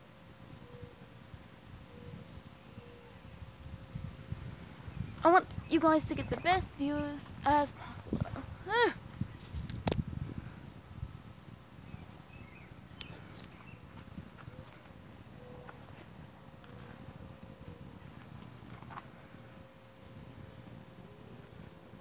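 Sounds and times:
camera handling rumble: 9.3s - 10.2s.

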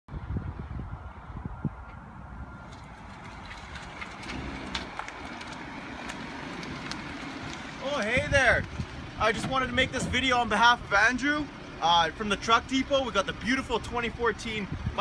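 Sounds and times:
low rumbling on microphone: 0.1s - 11.4s.

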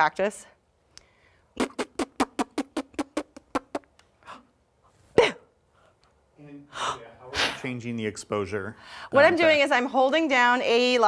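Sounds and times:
person laughing: 5.2s - 5.5s.

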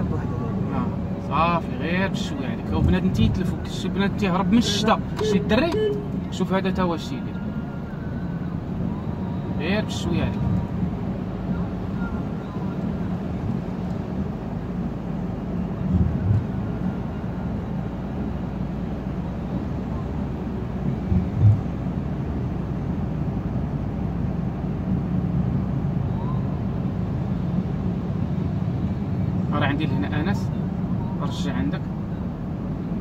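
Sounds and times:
car engine rumble: 0.0s - 33.0s.

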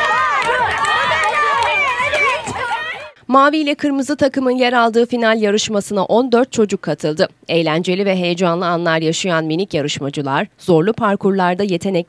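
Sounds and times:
crowd shouting and cheering: 0.0s - 3.2s.

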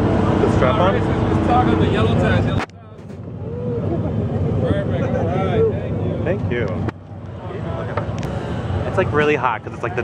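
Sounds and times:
ride vehicle rumbling: 0.0s - 10.0s
voices: 0.2s - 10.0s.

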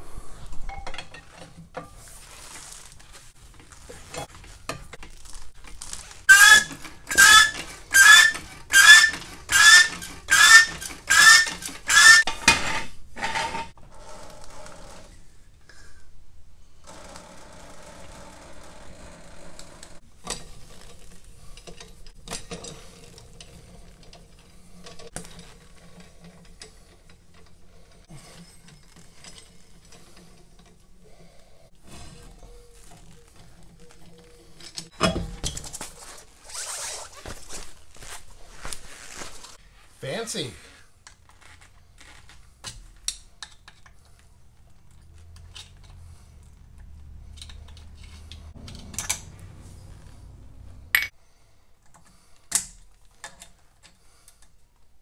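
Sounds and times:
floor jack pumping with squeaks: 5.9s - 15.0s, 31.8s - 39.6s.

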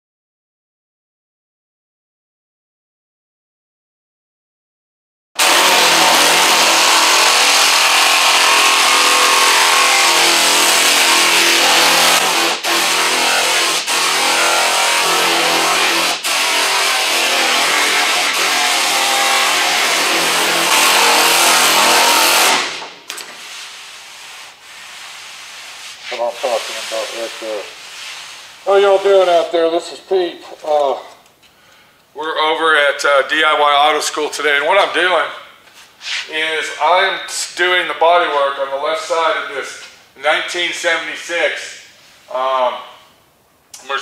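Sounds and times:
pneumatic air file sanding: 5.4s - 29.3s.

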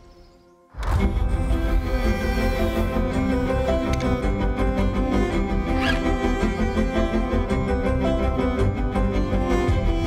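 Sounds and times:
cinematic background music: 0.0s - 10.0s.

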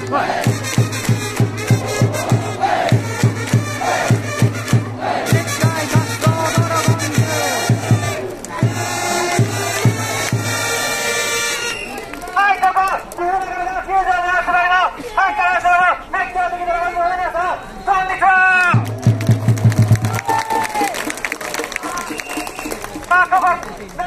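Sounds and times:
crowd chanting: 0.0s - 10.3s
bass drum beating: 0.4s - 10.6s, 18.8s - 20.9s
person shouting through megaphone: 5.1s - 9.7s.

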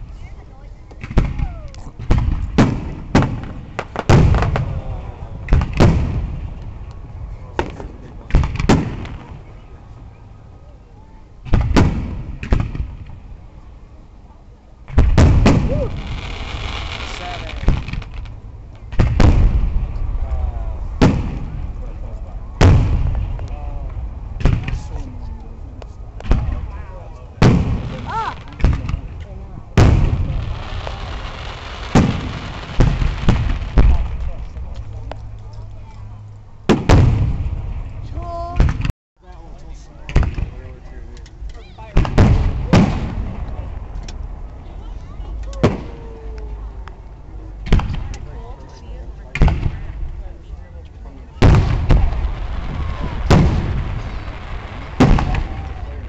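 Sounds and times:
firework hiss: 15.1s - 18.4s, 29.8s - 34.2s, 51.5s - 56.0s.

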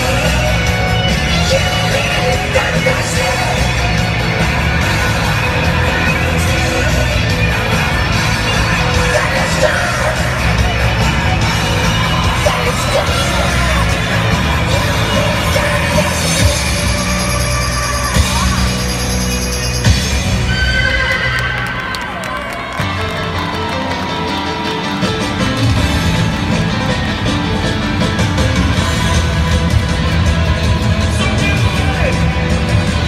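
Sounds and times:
upbeat music over stadium pa: 0.0s - 33.0s.

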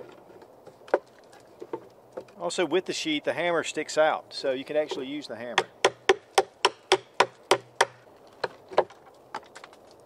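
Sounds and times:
hatchet knocking on wood: 5.6s - 8.0s.

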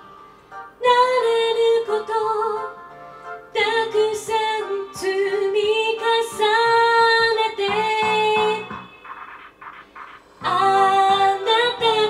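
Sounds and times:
karaoke backing track: 0.0s - 12.0s
woman singing a pop ballad: 0.8s - 2.8s, 3.5s - 8.7s, 10.4s - 12.0s.

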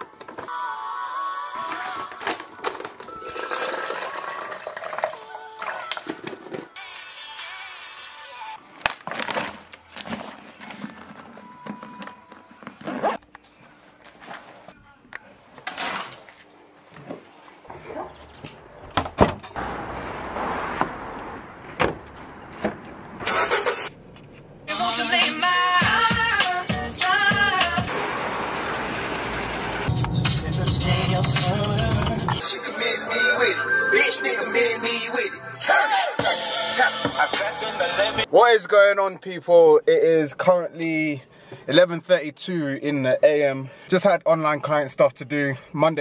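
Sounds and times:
music: 0.5s - 8.6s, 24.7s - 27.9s, 29.9s - 38.3s
liquid pouring into container: 3.2s - 6.1s
car engine rumbling: 17.7s - 25.0s, 27.8s - 35.4s.

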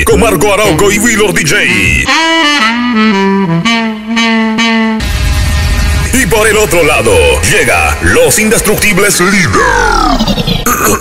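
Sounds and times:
saxophone melody: 0.0s - 6.0s.

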